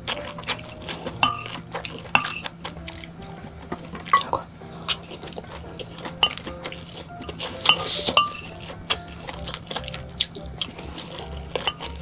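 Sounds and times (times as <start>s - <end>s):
utensils clinking on ceramic dish: 0.0s - 12.0s.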